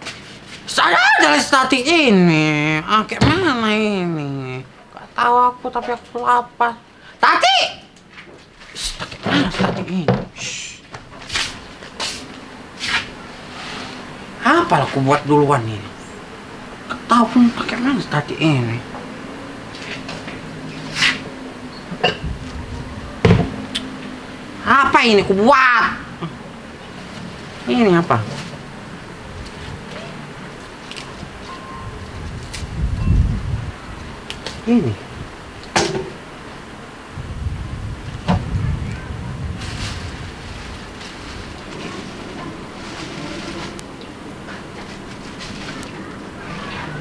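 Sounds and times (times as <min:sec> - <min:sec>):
wind gusting on microphone: 0:20.4 - 0:27.5, 0:28.5 - 0:47.0.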